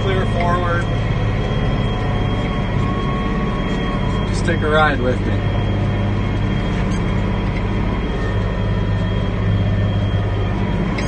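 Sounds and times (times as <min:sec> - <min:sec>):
faint high whine: 0:00.0 - 0:11.0
tractor diesel engine under load: 0:00.0 - 0:11.0.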